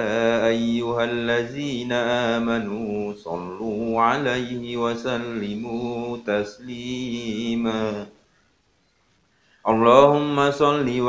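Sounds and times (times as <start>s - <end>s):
man chanting recitation: 0.0s - 8.2s, 9.6s - 11.0s.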